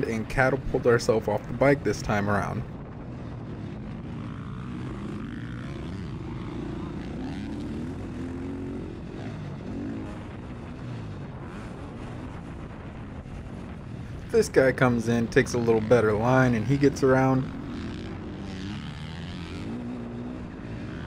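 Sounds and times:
motocross bike engine revving: 0.0 - 21.0.

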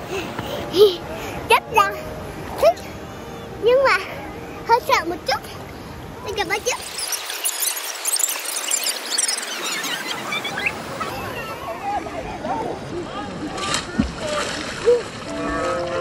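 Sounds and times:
splashing in water: 13.5 - 16.0
background music: 15.3 - 16.0.

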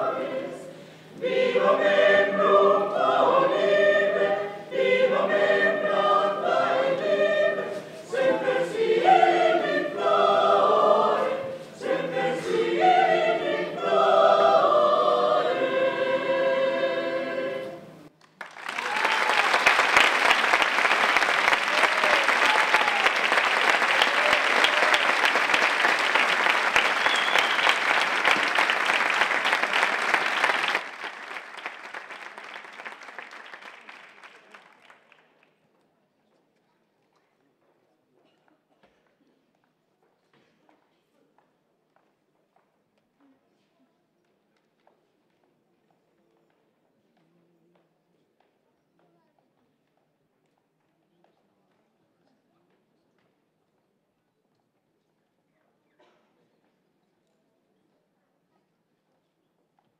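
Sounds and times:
mixed choir singing: 0.0 - 18.1
audience applause: 18.2 - 35.2.

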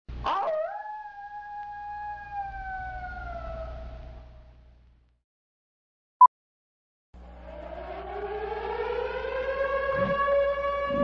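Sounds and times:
long howl: 0.2 - 4.6, 7.6 - 11.0.

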